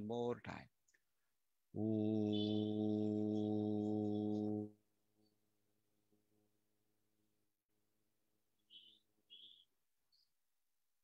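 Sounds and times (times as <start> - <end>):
man chanting a low note: 1.8 - 4.7.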